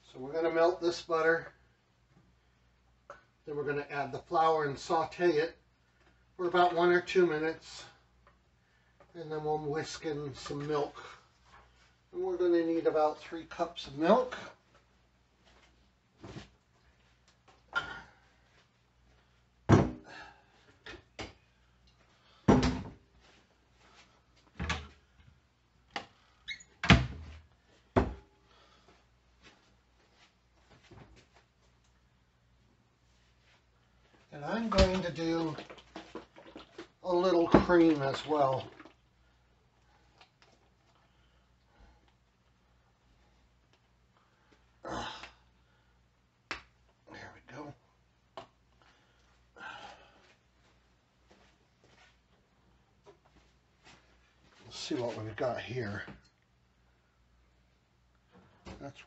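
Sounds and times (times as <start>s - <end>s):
knocks and clunks of containers: 19.7s - 20.1s, 22.5s - 23.0s, 34.6s - 39.0s.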